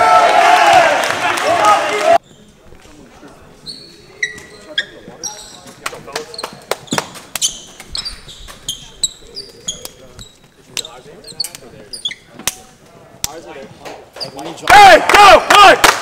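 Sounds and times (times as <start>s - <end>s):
sneaker squeaks: 2.2s - 2.7s, 3.5s - 12.6s, 14.0s - 14.6s.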